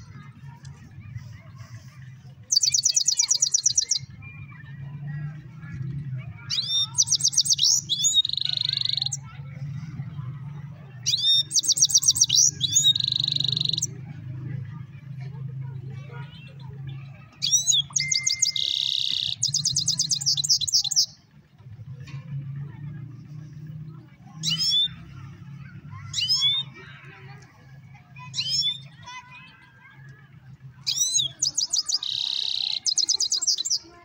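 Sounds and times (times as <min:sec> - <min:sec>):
goldfinch singing twittering trills: 0:17.4 - 0:21.2.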